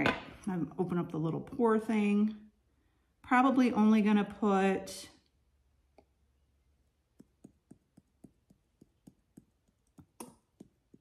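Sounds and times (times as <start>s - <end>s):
spice bottle tapping: 7.1s - 11.0s.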